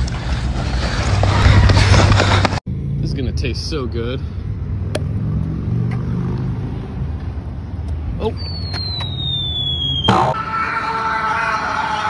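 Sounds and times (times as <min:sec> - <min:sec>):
city traffic rumble: 0:00.0 - 0:12.0
wind: 0:00.0 - 0:12.0.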